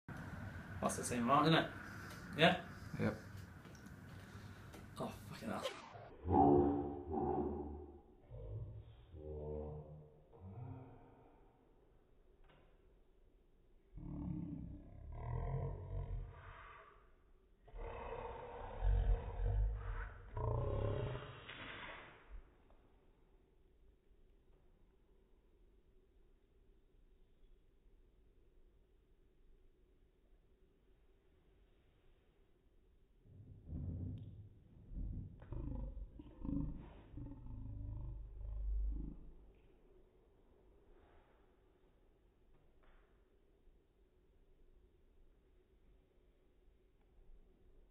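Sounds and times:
slowed-down deep voices: 0.1s - 11.8s, 13.8s - 22.5s, 33.2s - 39.8s
deep drawn-out rumbling: 33.3s - 39.4s.

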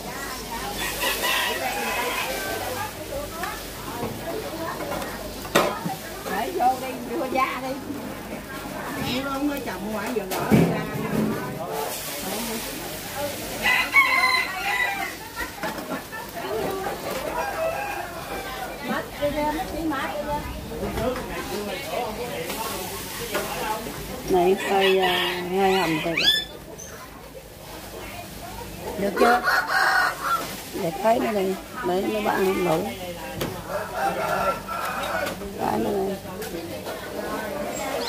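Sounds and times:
faint voices: 0.0s - 38.0s.

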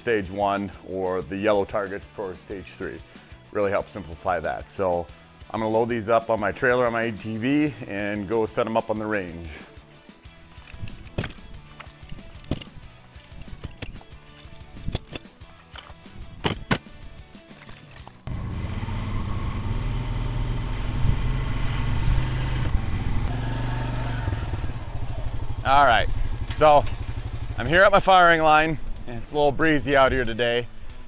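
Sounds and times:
metal stands clicking and knocking: 10.6s - 18.2s
engine running steadily: 18.0s - 27.9s.

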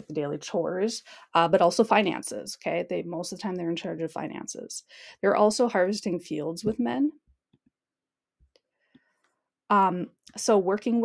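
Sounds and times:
person speaking: 5.3s - 7.2s.

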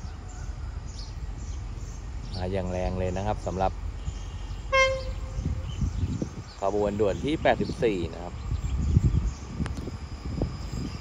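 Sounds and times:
low rumble of train: 0.0s - 11.0s
locomotive horn toot: 4.0s - 5.8s.

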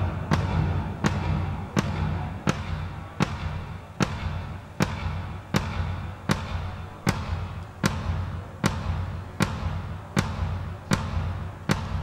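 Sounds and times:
drum hits: 0.0s - 12.0s
steady low hum: 0.0s - 12.0s.

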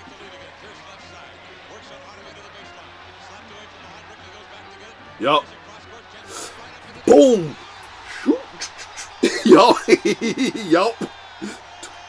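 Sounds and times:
commentator's voice: 0.0s - 11.9s
arena sound: 5.2s - 5.5s, 6.3s - 12.0s.

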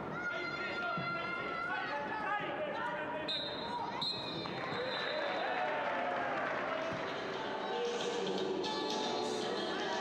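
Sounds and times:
players and spectators shouting: 4.7s - 6.5s.

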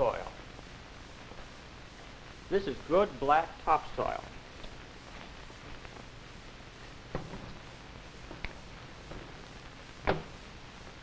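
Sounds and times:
recording hum and hiss: 0.0s - 11.0s.

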